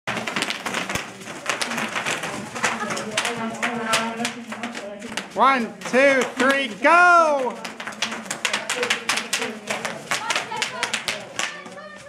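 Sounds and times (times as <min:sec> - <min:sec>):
bubble wrap popping underfoot: 0:00.1 - 0:12.0.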